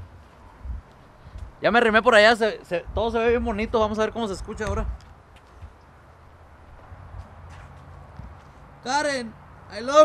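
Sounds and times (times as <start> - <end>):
footsteps on concrete: 0.2 - 1.6, 5.0 - 5.8, 6.7 - 8.7.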